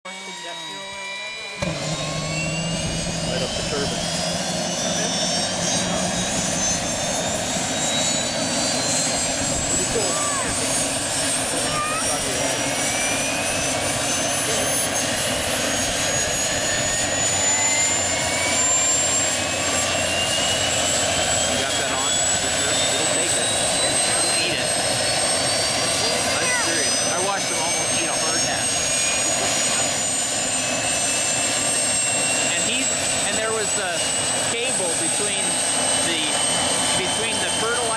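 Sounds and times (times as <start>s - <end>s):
helicopter turbine whining: 0.0s - 37.9s.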